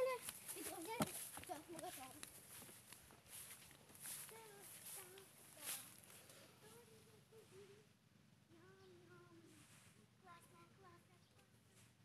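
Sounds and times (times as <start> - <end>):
footsteps in grass: 0.0 - 7.0.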